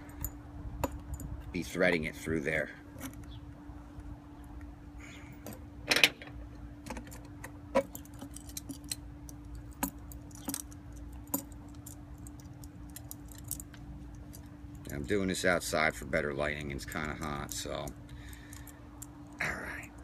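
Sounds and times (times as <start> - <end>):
faint steady hum: 0.0 - 20.0
metal hardware clinking: 5.4 - 15.0.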